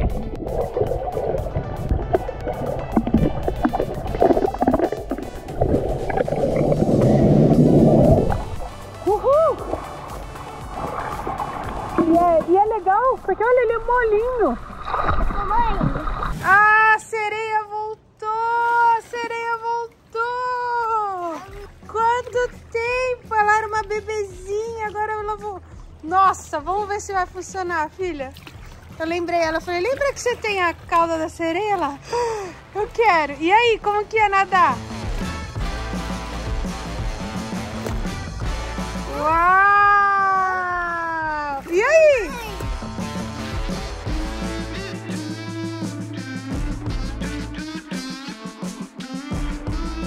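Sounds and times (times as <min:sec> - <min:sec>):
underwater pool water sloshing: 0:00.0 - 0:16.8, 0:20.8 - 0:39.1.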